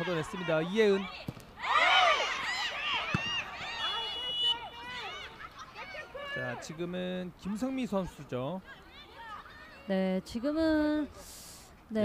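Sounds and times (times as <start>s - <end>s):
players shouting: 0.0s - 6.8s
referee's whistle blast: 3.2s - 4.9s.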